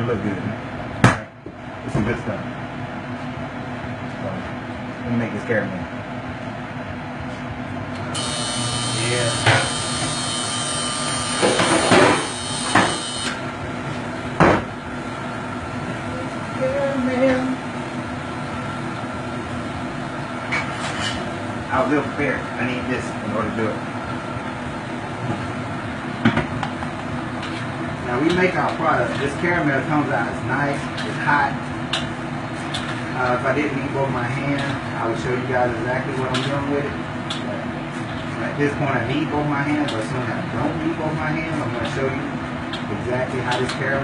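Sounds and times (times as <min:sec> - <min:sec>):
low machine hum: 0:00.0 - 0:44.0.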